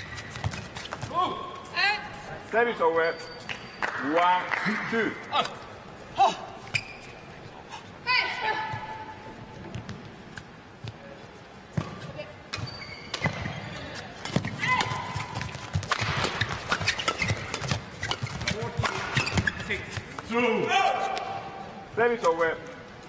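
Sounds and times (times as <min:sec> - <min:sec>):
shoe squeaks: 0:00.0 - 0:02.0, 0:02.8 - 0:03.9, 0:06.6 - 0:07.4, 0:12.0 - 0:20.2
racket striking shuttlecock: 0:14.2 - 0:19.4.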